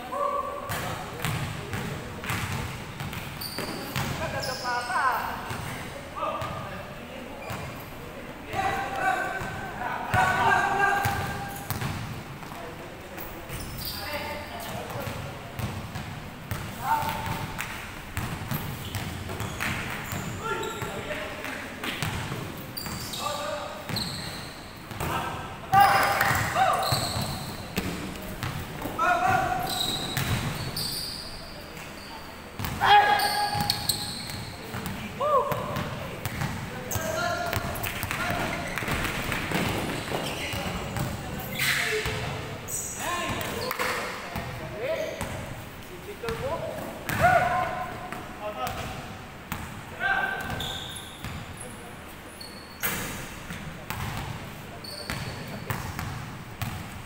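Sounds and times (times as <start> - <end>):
players calling out: 32.7 - 35.9.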